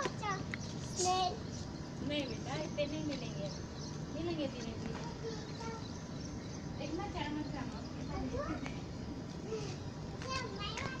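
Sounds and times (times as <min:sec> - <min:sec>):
children talking: 0:00.0 - 0:11.0.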